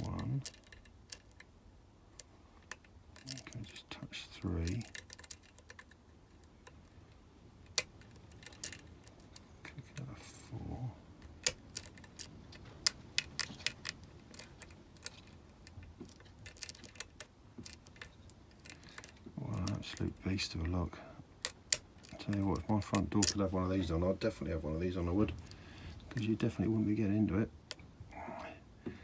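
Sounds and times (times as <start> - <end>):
lock pick metallic clicks: 0.0 - 1.5, 4.6 - 9.4, 11.2 - 20.1, 21.4 - 23.4.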